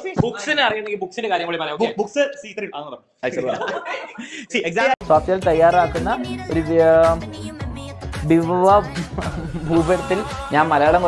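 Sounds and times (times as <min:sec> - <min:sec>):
people talking and chuckling: 0:03.2 - 0:04.7, 0:08.9 - 0:10.1.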